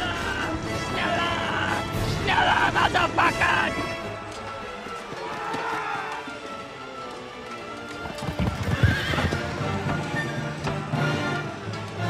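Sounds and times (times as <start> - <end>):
film score music: 0.0 - 12.0
horses galloping: 3.3 - 12.0
horse whinnying: 8.2 - 10.6.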